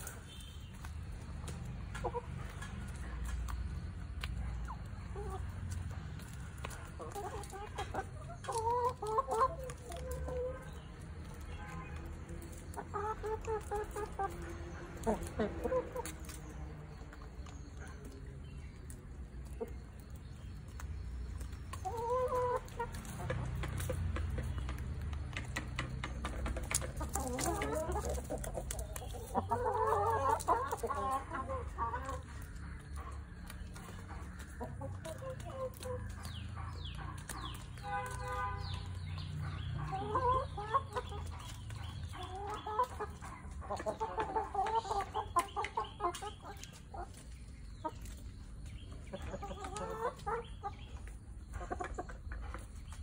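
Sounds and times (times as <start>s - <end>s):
chickens clucking: 0.0s - 53.0s.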